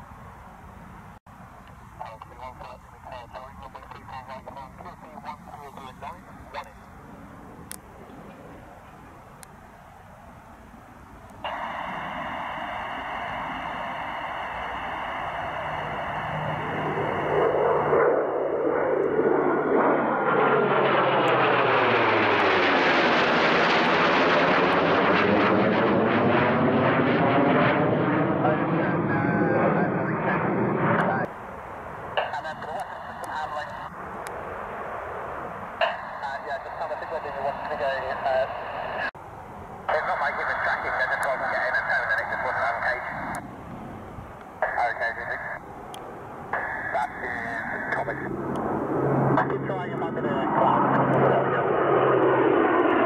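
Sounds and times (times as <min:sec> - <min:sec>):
jet engines roaring overhead: 0:00.0 - 0:53.0.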